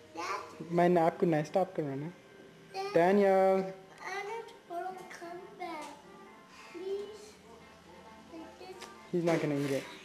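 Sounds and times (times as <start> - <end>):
child's wordless sing-song voice: 0.0 - 0.6, 4.0 - 9.1.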